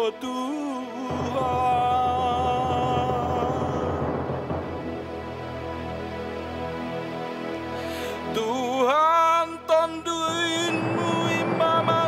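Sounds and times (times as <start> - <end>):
instrumental accompaniment: 0.0 - 12.0
man singing held note: 8.2 - 12.0.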